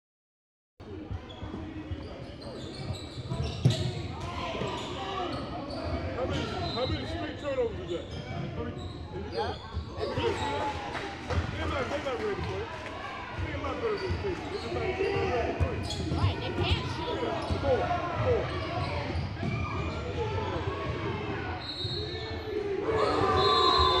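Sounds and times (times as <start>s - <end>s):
voices of players and spectators: 0.8s - 24.0s
sneakers squeaking: 1.0s - 10.6s, 13.6s - 24.0s
shrill whistle tone: 23.1s - 24.0s.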